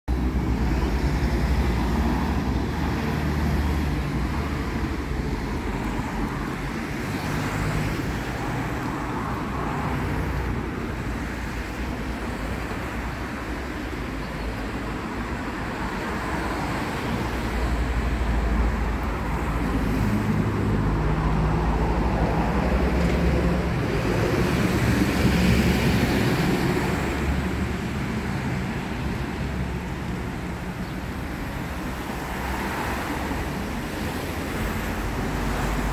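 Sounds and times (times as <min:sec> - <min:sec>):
cars and truck driving past: 0:00.1 - 0:35.9.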